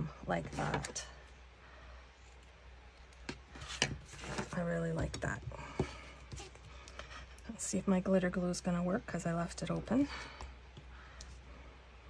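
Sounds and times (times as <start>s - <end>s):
handling paper cards: 2.2s - 7.1s.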